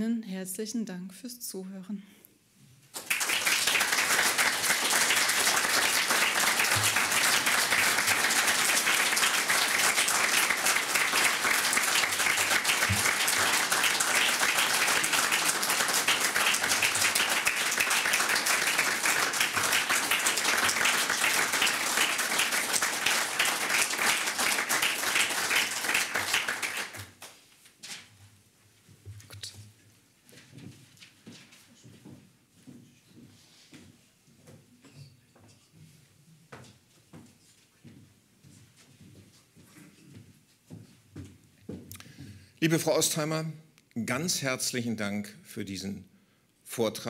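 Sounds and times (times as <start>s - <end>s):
audience applauding: 2.9s - 27.4s.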